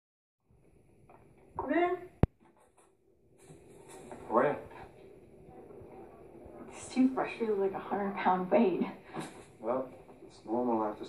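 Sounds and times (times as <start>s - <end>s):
faint room noise: 0.5s - 11.0s.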